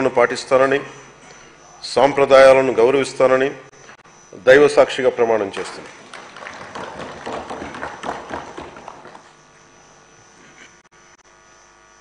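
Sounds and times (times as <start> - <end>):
faint electrical hum: 0.0 - 12.0
people applauding: 5.5 - 9.4.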